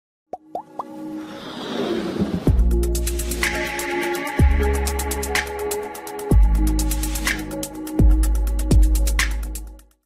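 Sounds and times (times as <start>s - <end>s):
rising plop sound effects: 0.3s - 1.0s.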